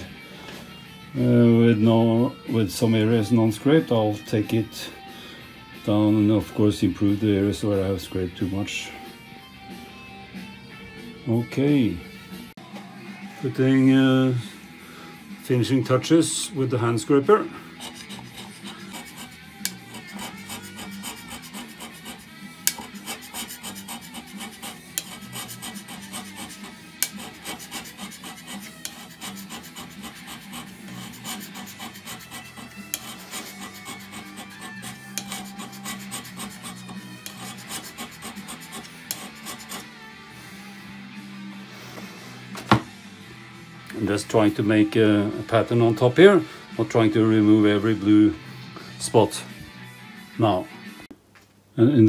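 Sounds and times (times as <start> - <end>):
scraper rasping on metal: 17.5 - 40.0.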